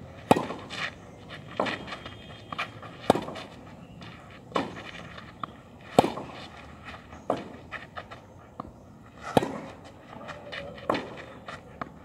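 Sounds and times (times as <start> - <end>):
tennis ball hit with racquet: 0.2 - 0.8, 1.5 - 3.6, 4.4 - 6.5, 7.3 - 7.7, 8.6 - 12.0.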